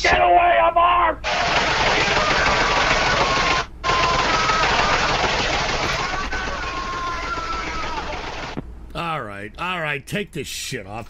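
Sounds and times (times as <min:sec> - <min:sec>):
gunfire over phone line: 0:01.2 - 0:08.6.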